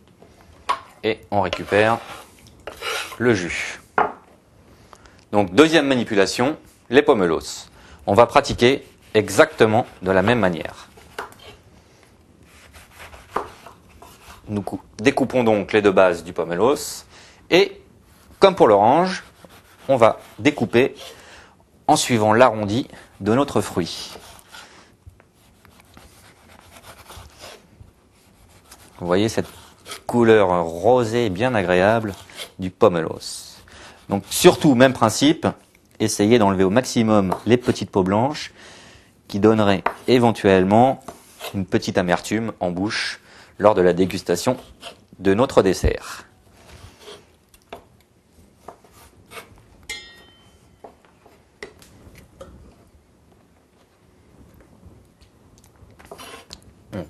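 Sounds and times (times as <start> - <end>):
knife scraping cuts on board: 1.5 - 3.2, 12.5 - 14.4, 46.8 - 47.3, 56.0 - 56.6.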